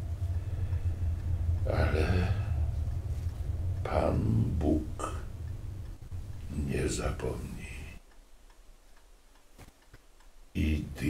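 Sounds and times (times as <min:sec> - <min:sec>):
faint ticks: 0:00.0 - 0:11.0.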